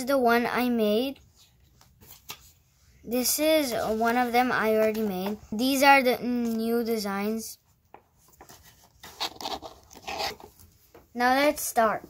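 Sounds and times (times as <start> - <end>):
paper page rustling and scraping: 8.2 - 10.7.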